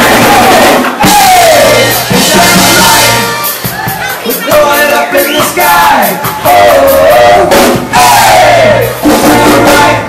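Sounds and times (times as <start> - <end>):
live rock band music: 0.0 - 10.0
person singing: 0.0 - 10.0
trumpet: 0.0 - 10.0.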